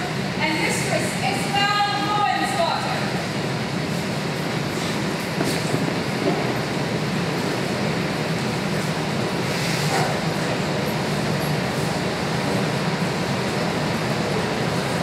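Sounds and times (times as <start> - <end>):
low rumbling room noise: 0.0 - 15.0.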